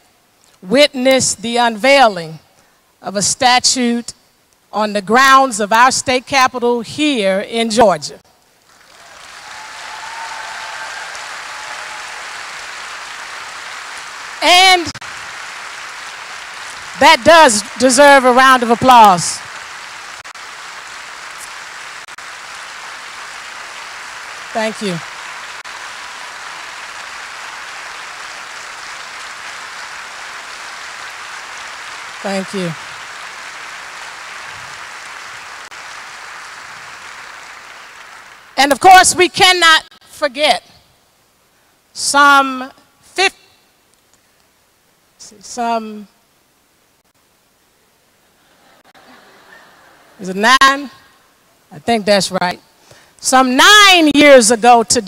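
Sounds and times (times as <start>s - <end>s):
audience applauding: 8.7s - 38.6s.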